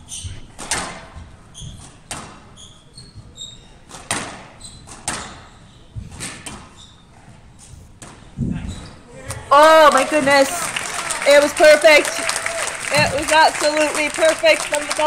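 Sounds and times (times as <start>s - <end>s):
shoes squeaking on court floor: 0.0s - 10.5s.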